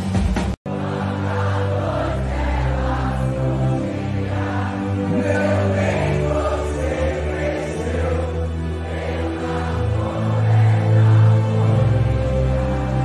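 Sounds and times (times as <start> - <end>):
live rock music: 0.0 - 8.7
crowd singing together: 0.7 - 13.0.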